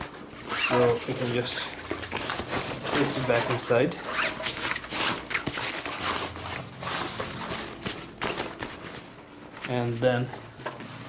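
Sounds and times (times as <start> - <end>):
nylon bag rustling: 0.0 - 11.0.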